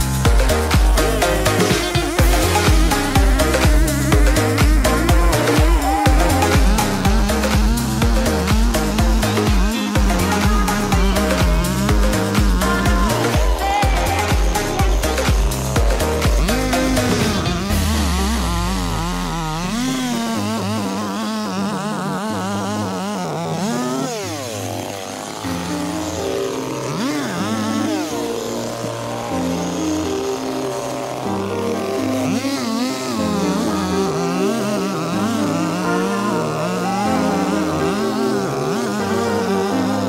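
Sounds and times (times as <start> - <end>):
background music: 0.0 - 40.0
chainsaw cutting logs: 0.0 - 40.0.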